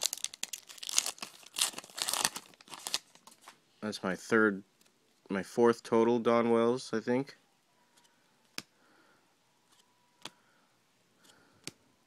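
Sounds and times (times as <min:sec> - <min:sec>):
cards and wrapper crinkling: 0:00.0 - 0:03.6.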